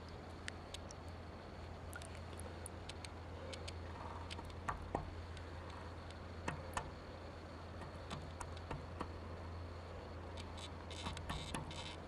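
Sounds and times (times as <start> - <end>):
faint high whine: 0.0 - 12.0
steady low hum: 0.0 - 12.0.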